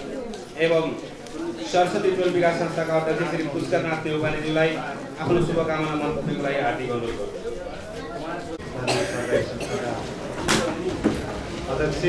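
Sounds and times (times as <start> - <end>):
people talking: 0.0 - 12.0
man coughing into microphone: 8.8 - 10.1.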